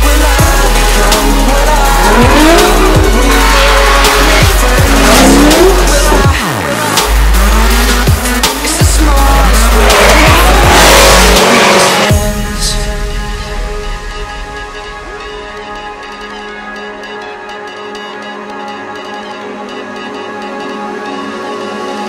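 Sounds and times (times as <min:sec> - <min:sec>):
car engines revving: 0:00.0 - 0:12.2
electronic music with bass: 0:00.0 - 0:22.0.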